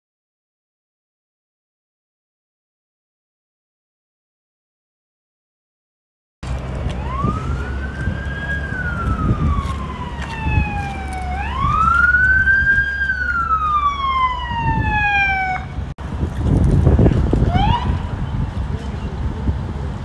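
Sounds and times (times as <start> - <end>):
street noise rumble: 6.4 - 20.0
siren wailing: 6.9 - 15.9, 17.5 - 18.1.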